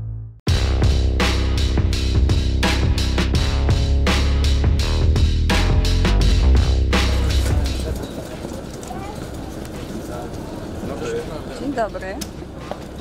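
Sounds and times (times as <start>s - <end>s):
background music with heavy bass: 0.0s - 8.0s
outdoor background noise: 6.4s - 13.0s.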